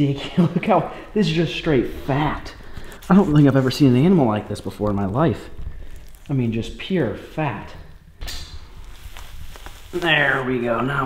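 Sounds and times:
hide scuffing and rustling: 8.7 - 10.6.

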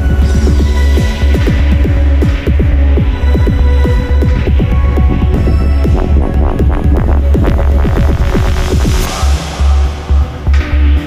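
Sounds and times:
low bass drone: 0.0 - 11.0.

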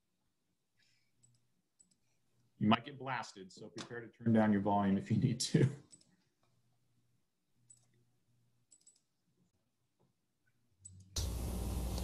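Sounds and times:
computer mouse clicks: 8.7 - 9.1.

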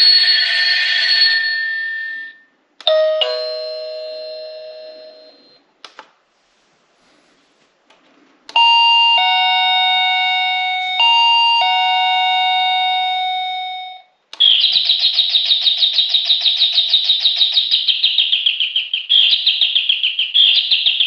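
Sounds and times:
electronic ding-dong doorbell chime: 0.0 - 5.6, 8.6 - 14.1.

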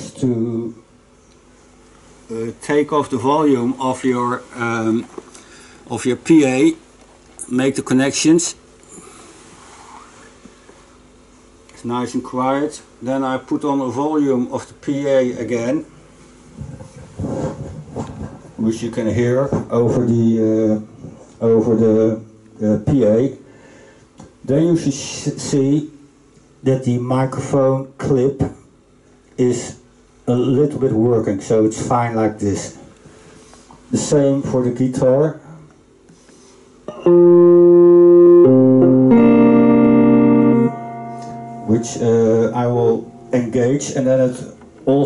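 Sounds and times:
guitar strumming chords: 36.9 - 43.5.

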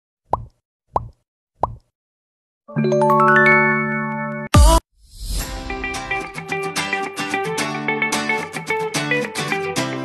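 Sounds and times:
upward-sweeping pop bloops: 0.3 - 1.9.

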